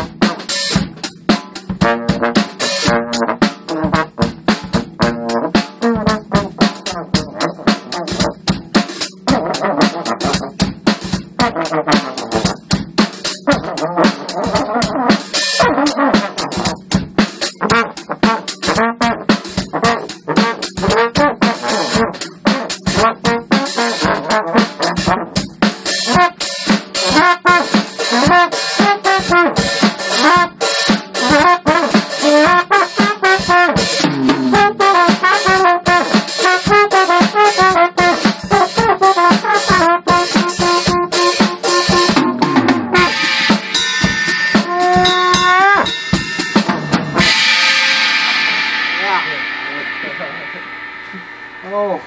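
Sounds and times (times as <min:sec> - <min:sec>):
trombone melody: 0:00.0 - 0:50.0
drum kit funk groove: 0:00.0 - 0:51.8
cymbal crash ringing: 0:43.0 - 0:52.0.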